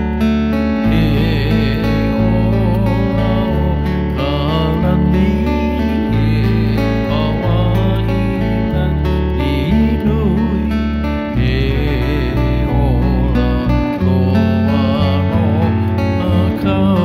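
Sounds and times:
acoustic guitar melody: 0.0s - 17.0s
electric bass guitar: 0.0s - 17.0s.

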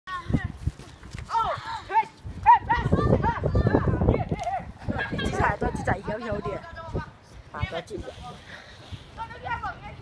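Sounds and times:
children yelling and squealing: 0.1s - 5.4s.

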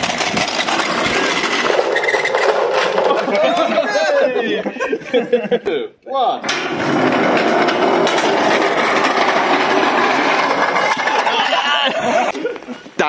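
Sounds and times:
metal racer rattling down steel ramp: 0.0s - 3.7s, 6.4s - 12.3s.

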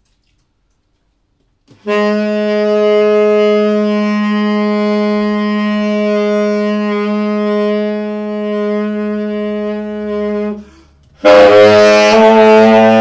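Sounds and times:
tenor saxophone long low note: 1.8s - 13.0s.

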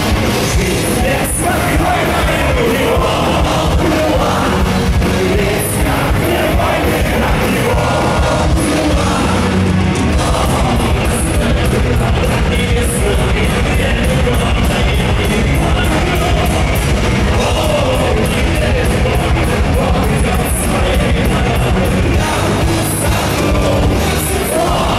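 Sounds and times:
metal band playing: 0.0s - 24.9s
lead vocalist singing: 0.2s - 24.9s.

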